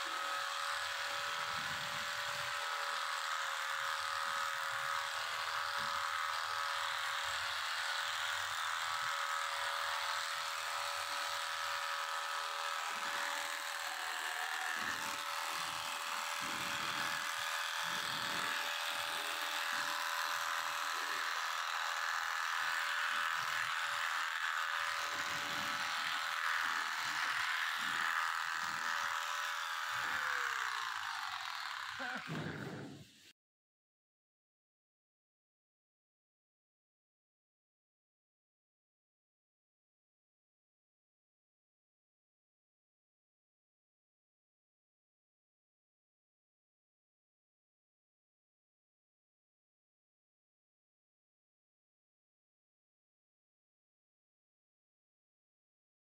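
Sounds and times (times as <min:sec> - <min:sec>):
electric hair clipper running: 0:00.0 - 0:33.3.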